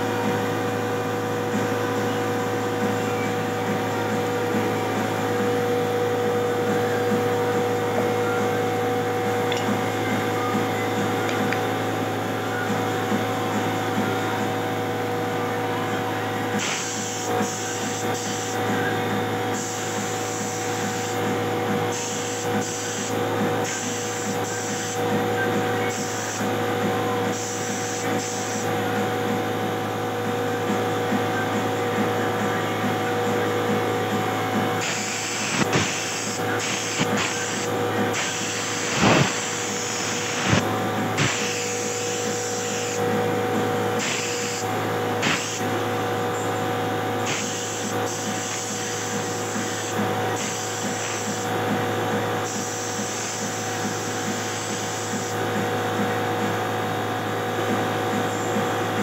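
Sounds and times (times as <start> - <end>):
air compressor running: 0.0 - 59.0
spray gun hissing: 34.8 - 40.6, 41.2 - 43.0, 44.0 - 45.7, 47.2 - 51.4.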